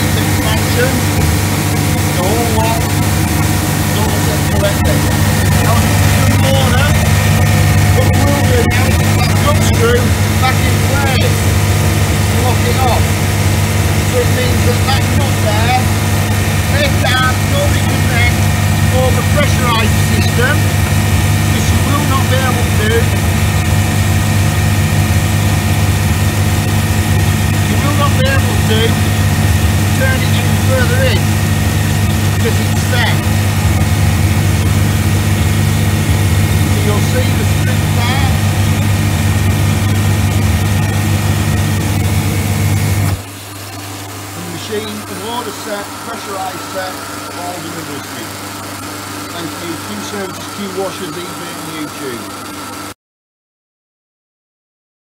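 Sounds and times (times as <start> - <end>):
pressure washer pump humming: 0.0 - 53.0.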